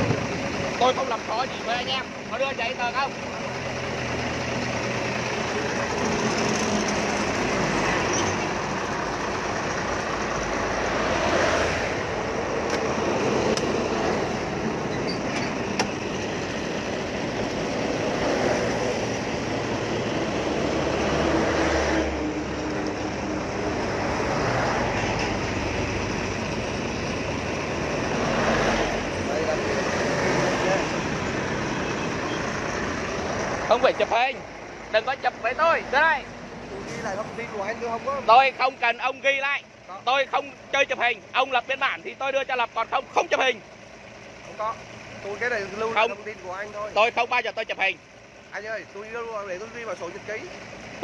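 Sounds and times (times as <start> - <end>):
trucks and cars passing: 0.0 - 51.0.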